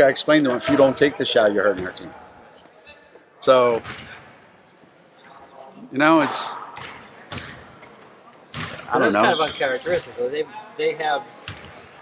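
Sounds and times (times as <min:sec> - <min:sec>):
basketball bouncing on gym floor: 0:06.8 - 0:07.7, 0:08.5 - 0:10.0, 0:11.4 - 0:11.8.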